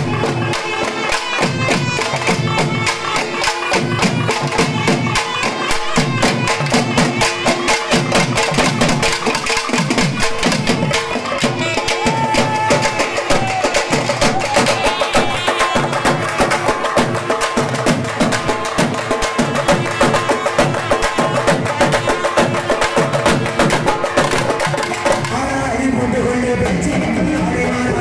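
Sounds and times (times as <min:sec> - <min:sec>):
wind instrument melody: 0:00.0 - 0:08.7, 0:10.8 - 0:25.1
fast hand drumming: 0:00.0 - 0:25.4.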